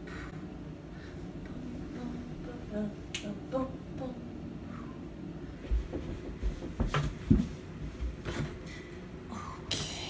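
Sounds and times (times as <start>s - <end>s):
finger snap: 3.1s - 3.4s.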